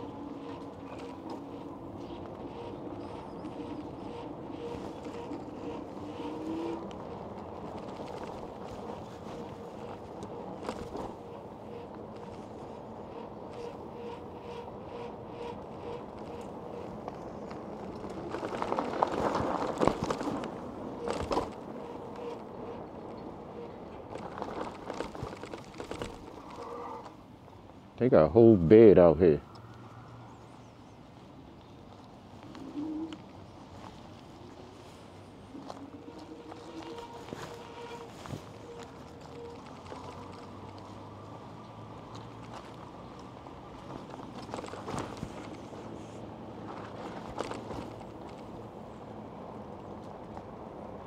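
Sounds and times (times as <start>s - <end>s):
electric motor whine: 0.0s - 7.2s
rattle and rolling noise: 0.0s - 27.2s
tyre and road noise: 0.0s - 51.0s.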